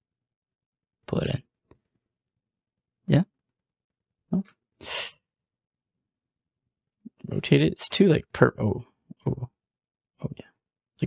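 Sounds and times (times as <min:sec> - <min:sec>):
man saying oh: 0:07.3 - 0:09.5.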